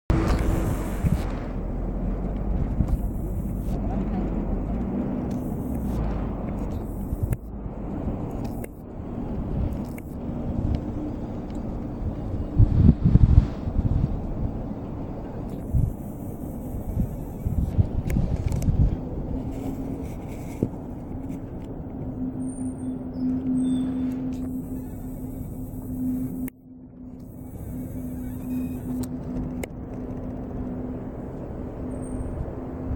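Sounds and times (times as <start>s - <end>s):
road traffic rumble: 0.1s - 32.9s.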